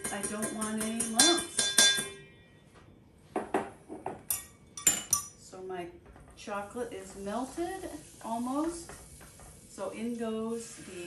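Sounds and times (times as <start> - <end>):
metal kitchenware clanking: 0.0 - 2.2, 4.1 - 5.4
metal sieve ringing against bowl: 0.0 - 2.3.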